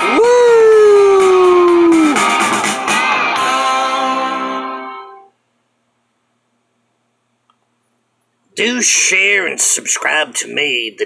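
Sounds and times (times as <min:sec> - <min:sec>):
man howling woo: 0:00.0 - 0:02.5
song: 0:01.0 - 0:05.3.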